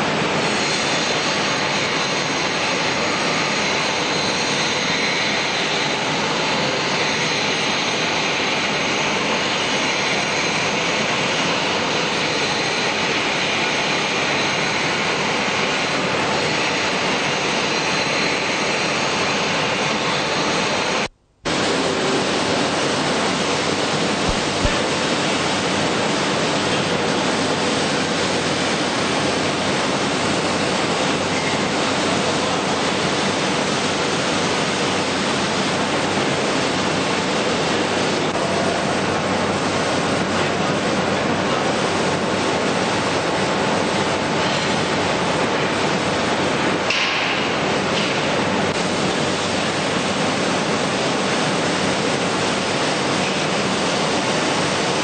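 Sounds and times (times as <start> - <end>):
steady rushing noise: 0.0 - 55.0.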